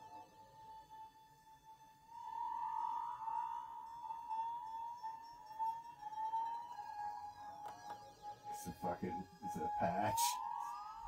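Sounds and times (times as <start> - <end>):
wavering gliding synth layer: 2.1 - 7.6, 8.8 - 11.0.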